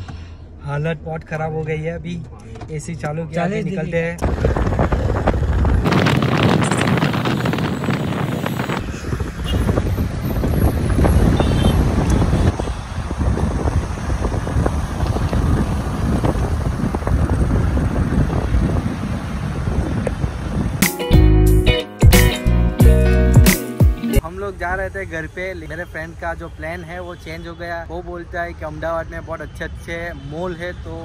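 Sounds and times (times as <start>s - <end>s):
road and traffic noise: 0.0s - 31.0s
wind buffeting microphone: 4.2s - 20.8s.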